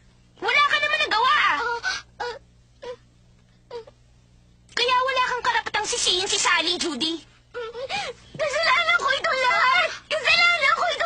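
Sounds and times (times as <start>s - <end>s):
girl sobbing: 1.6s - 3.1s, 7.5s - 10.7s.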